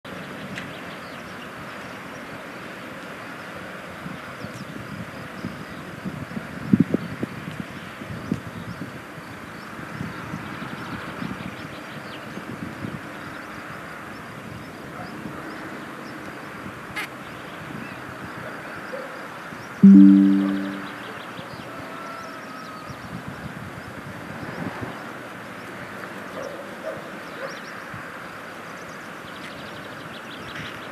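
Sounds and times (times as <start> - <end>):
loud low tone: 19.8 - 21.1.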